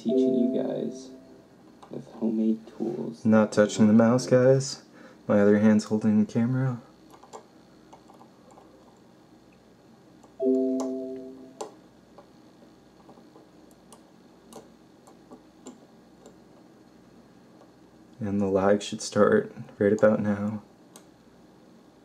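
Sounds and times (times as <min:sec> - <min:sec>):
electronic tone: 0:00.0 - 0:01.4, 0:10.4 - 0:11.6.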